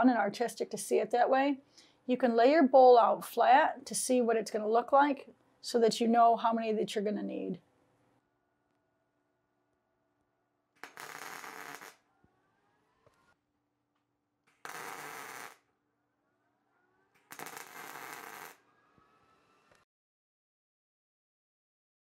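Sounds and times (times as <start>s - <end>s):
welding arc bursts: 10.8s - 12.0s, 14.5s - 15.6s, 17.2s - 18.6s.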